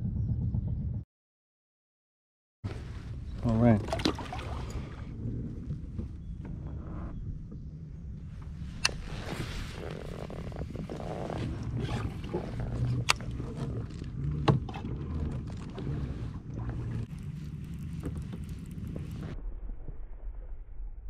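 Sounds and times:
wind rumbling on microphone: 0:00.0 - 0:01.0, 0:02.7 - 0:21.0.

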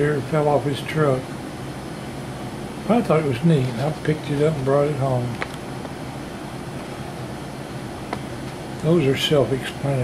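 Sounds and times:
background hum and hiss: 0:00.0 - 0:10.0.

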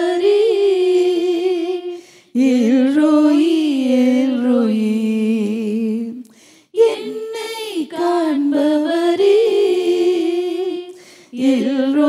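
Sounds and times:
woman singing into microphone: 0:06.8 - 0:12.0.

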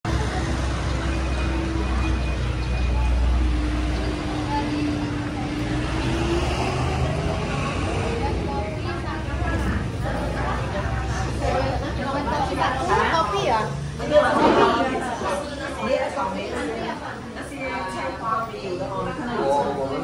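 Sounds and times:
indistinct voices: 0:00.0 - 0:20.0.

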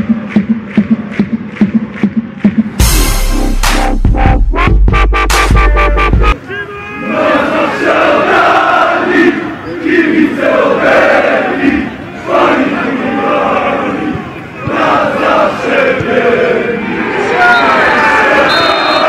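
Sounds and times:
football crowd chanting: 0:06.3 - 0:19.0.

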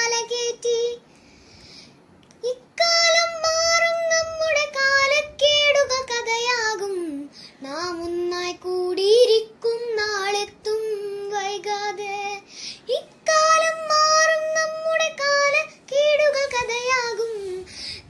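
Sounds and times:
girl singing unaccompanied: 0:00.0 - 0:01.2, 0:02.2 - 0:18.0.

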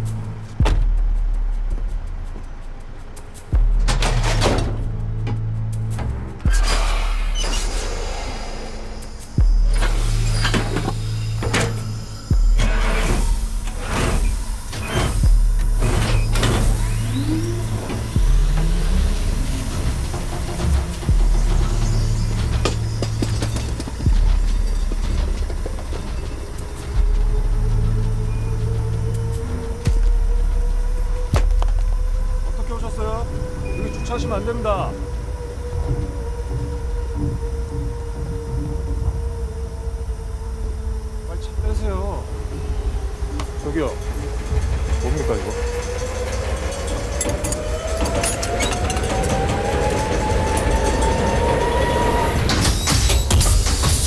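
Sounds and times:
suspense score with bass pulse: 0:00.0 - 0:54.0
sustained high tones: 0:32.0 - 0:53.2.

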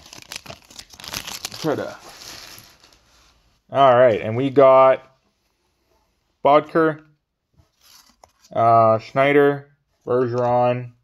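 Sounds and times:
wrapper crinkling and tearing: 0:00.0 - 0:03.0.

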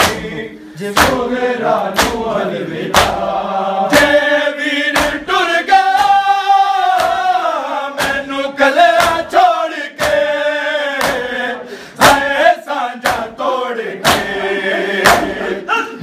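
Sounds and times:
group chest-beating in unison: 0:00.0 - 0:16.0
men chanting a lament: 0:00.0 - 0:16.0.

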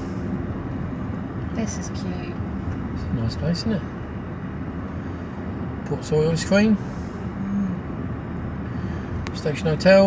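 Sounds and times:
vehicle cabin engine rumble: 0:00.0 - 0:10.0.

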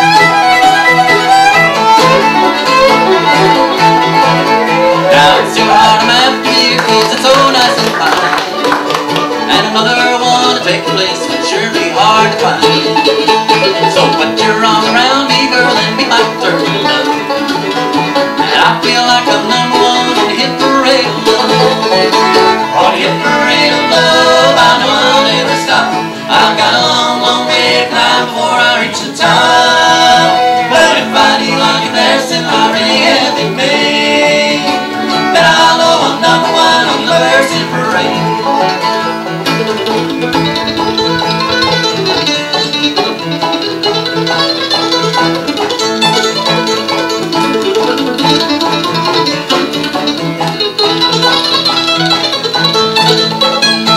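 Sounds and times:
acoustic guitar picking: 0:00.0 - 0:53.9
banjo picking: 0:00.0 - 0:53.9
mandolin picking: 0:00.0 - 0:53.9.

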